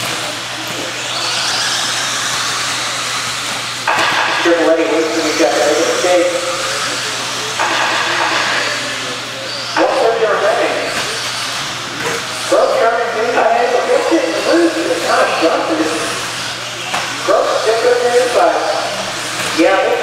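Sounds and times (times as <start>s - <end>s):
rc car motor whine: 0.0s - 20.0s.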